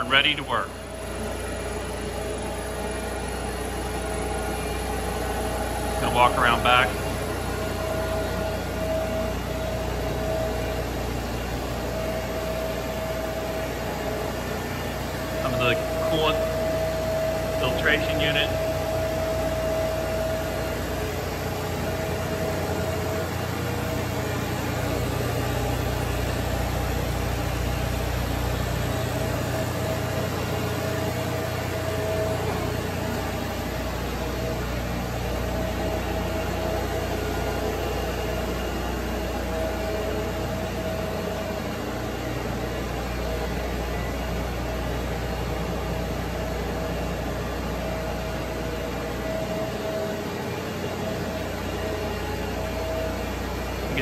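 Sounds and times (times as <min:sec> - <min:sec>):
grinding machine humming: 0:00.0 - 0:54.0
machine whine: 0:00.0 - 0:54.0
pump motor running: 0:00.0 - 0:54.0.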